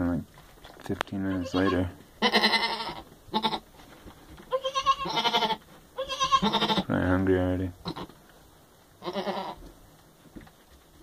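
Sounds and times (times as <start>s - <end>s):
goat kid bleating: 1.2s - 3.7s, 4.5s - 6.9s, 7.8s - 8.2s, 9.0s - 9.7s.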